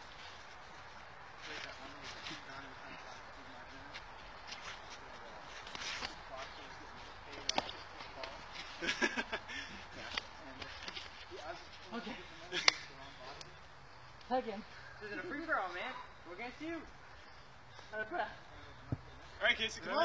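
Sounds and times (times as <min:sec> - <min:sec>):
bursts of laughter: 0:08.8 - 0:09.8.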